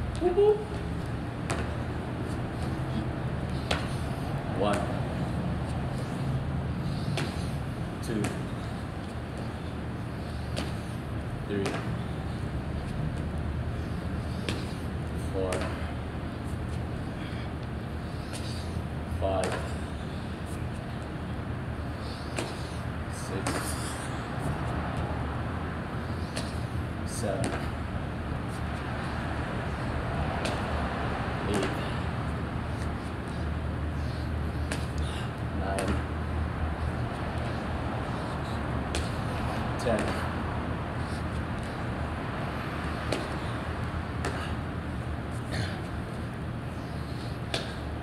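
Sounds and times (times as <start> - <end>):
steady low hum: 0.0 - 48.0
hands and feet thudding on concrete: 0.1 - 13.4, 14.0 - 15.9, 19.3 - 21.2, 22.0 - 25.1, 26.1 - 30.8, 31.4 - 48.0.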